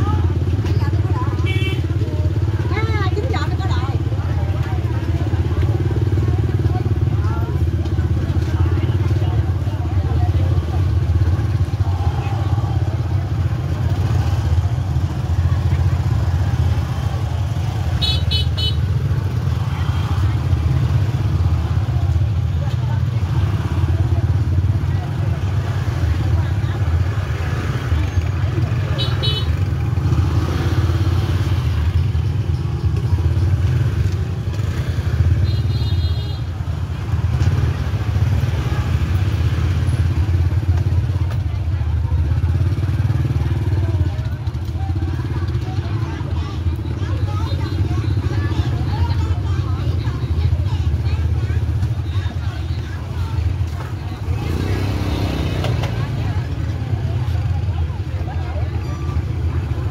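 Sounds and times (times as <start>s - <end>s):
shoppers and vendors chattering: 0.0s - 59.9s
small motorbike engines running: 0.0s - 59.9s
motorbike horn beeps: 18.0s - 18.9s, 29.0s - 29.6s.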